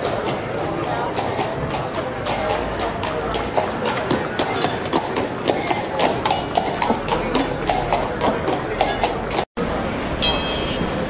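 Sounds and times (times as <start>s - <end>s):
horse hooves on pavement: 0.0s - 9.5s
street noise hum: 0.0s - 11.0s.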